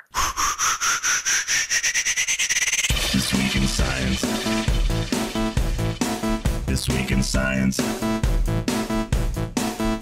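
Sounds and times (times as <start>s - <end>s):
rising pulsing tone: 0.6s - 7.2s
music with drums and bass: 2.9s - 10.0s.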